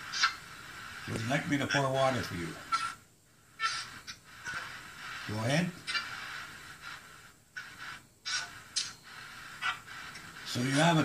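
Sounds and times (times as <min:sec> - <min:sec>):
choppy radio static bursts: 0:00.0 - 0:11.0.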